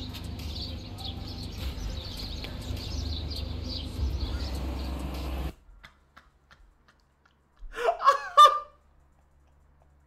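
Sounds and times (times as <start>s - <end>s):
man laughing hard: 7.7s - 8.8s.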